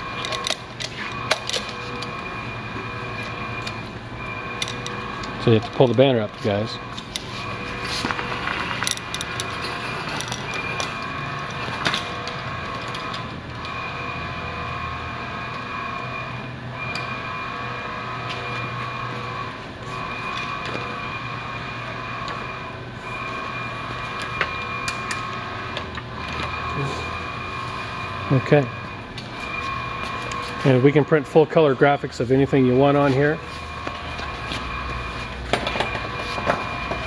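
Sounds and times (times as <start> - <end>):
machinery hum: 0.0 - 37.0.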